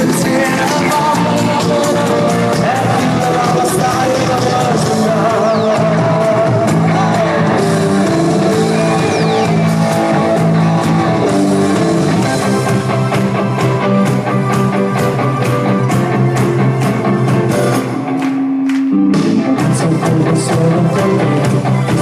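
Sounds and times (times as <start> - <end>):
pop band playing sustained chords: 0.0 - 22.0.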